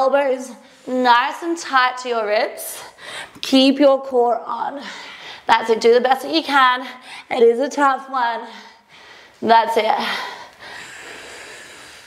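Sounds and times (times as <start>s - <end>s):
woman breathing hard: 8.5s - 9.4s, 10.0s - 12.0s.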